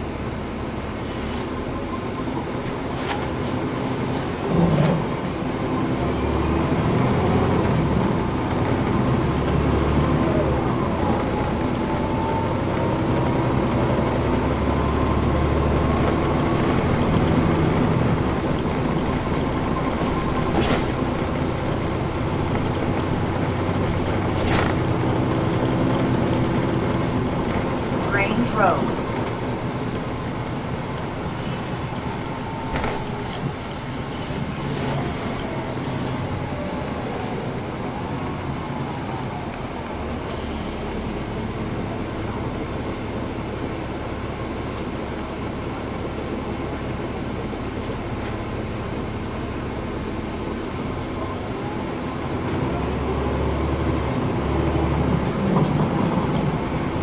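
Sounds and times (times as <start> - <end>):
bus diesel engine under load: 0.0 - 57.0.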